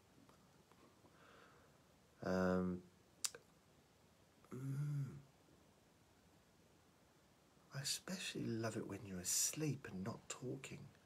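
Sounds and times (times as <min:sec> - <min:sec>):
man saying ooh: 0:02.2 - 0:02.8, 0:04.5 - 0:05.3.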